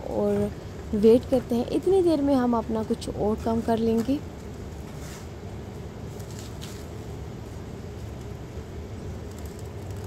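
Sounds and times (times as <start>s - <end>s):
low background hum: 0.0s - 10.0s
cling film crinkling: 9.1s - 10.0s.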